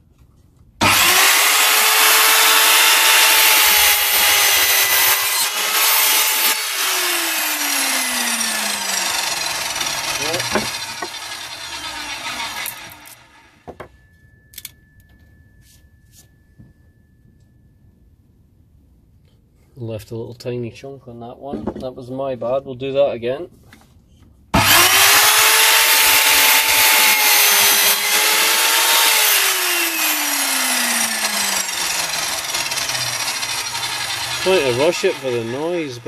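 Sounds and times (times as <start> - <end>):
mitre saw cutting wood: 0.8 - 13.6, 24.6 - 36.0
saw motor winding down: 0.8 - 13.6, 24.6 - 36.0
faint steady high tone: 13.6 - 19.3.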